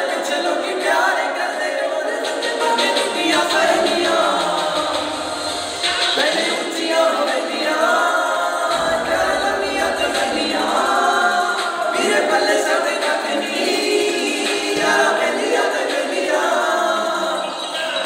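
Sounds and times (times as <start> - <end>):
group of young men singing: 0.0 - 18.0.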